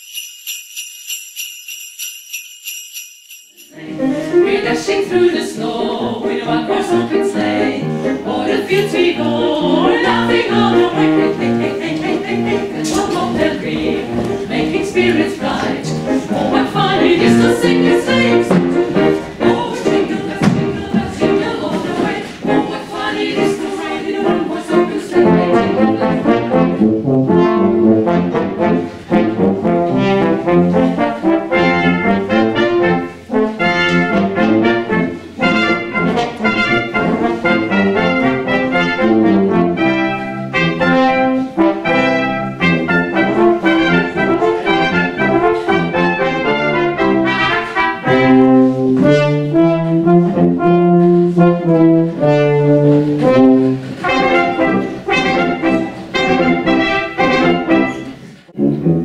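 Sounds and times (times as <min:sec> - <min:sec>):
low tuba line: 0:05.6 - 0:59.0
brass quintet playing: 0:24.1 - 0:59.0.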